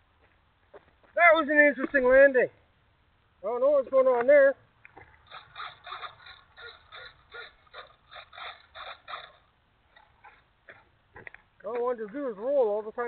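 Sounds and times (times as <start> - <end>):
servos whirring: 4.9 - 10.5.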